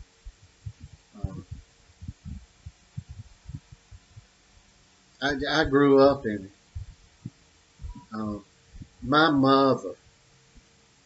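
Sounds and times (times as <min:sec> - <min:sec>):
soft low thuds: 0:00.0 - 0:09.1
faint steady hum: 0:00.0 - 0:11.0
person saying uh: 0:01.2 - 0:01.6, 0:08.0 - 0:08.4.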